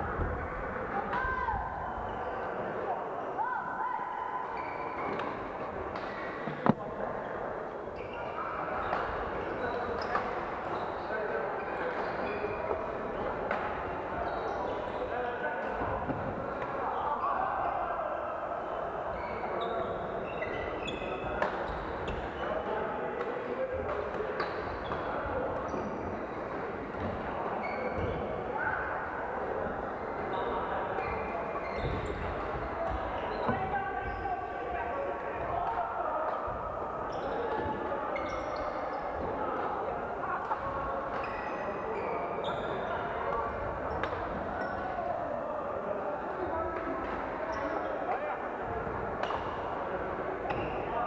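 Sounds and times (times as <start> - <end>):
players' voices: 0.0 - 51.0.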